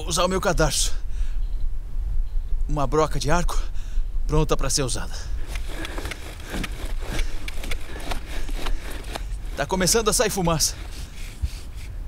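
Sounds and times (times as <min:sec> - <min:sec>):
wood scraping on wood: 0:05.4 - 0:12.0.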